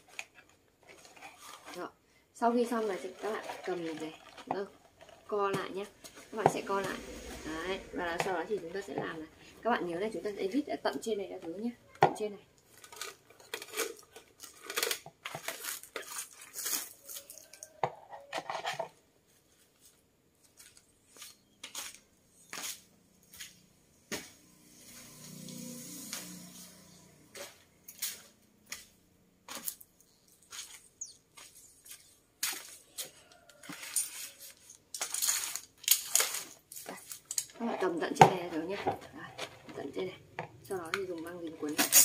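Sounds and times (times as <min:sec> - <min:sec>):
paper rustling: 0:00.0 - 0:01.8
low hum: 0:05.9 - 0:10.4.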